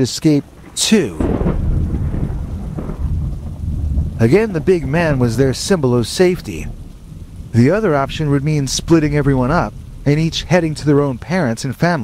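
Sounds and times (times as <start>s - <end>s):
rain: 0.0s - 12.0s
thunder rumbling: 0.0s - 12.0s.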